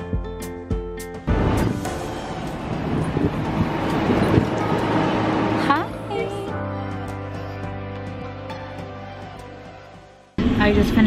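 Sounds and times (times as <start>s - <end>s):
traffic noise: 1.6s - 6.5s.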